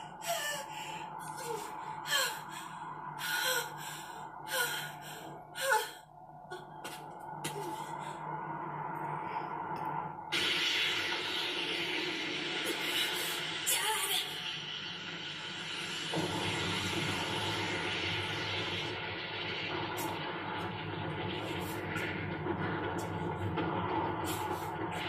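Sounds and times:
rumbling: 16.1s - 25.0s.

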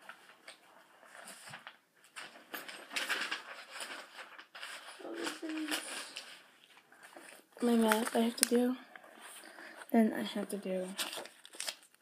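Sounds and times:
paper rustling and shuffling: 0.0s - 12.0s
girl murmuring: 5.0s - 6.2s.

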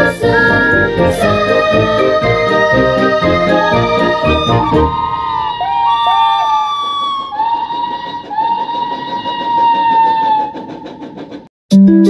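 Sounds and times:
fire engine siren wailing: 0.0s - 10.6s
siren yelps: 4.1s - 10.6s.

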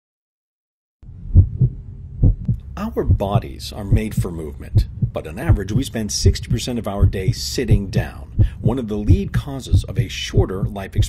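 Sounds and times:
low steady hum: 1.0s - 11.0s
heartbeat thumps: 1.3s - 11.0s.

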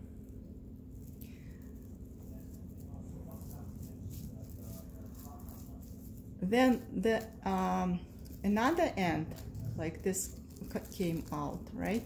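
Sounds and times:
low room hum: 0.0s - 12.0s
plastic yarn crinkling: 0.8s - 12.0s.

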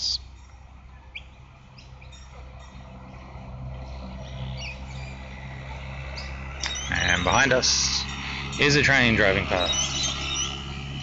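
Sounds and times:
birds chirping: 0.0s - 11.0s
steady low hum: 0.0s - 11.0s.

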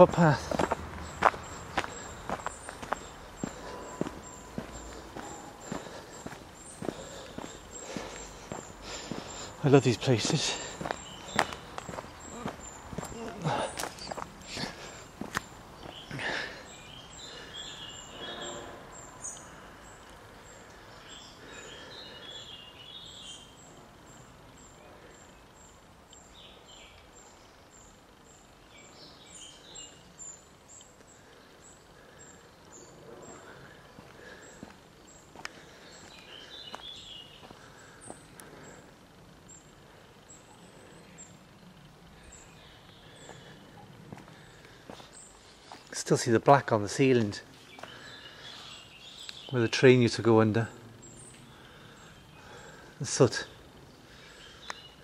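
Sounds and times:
faint footsteps: 0.0s - 16.6s, 33.3s - 38.6s, 42.9s - 46.1s
small birds chirping: 0.0s - 55.0s.

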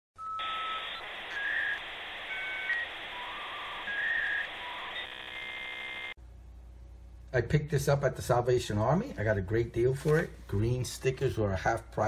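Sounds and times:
electronic beeping tones: 0.2s - 6.1s
buzzy electronic tone: 0.4s - 6.2s.

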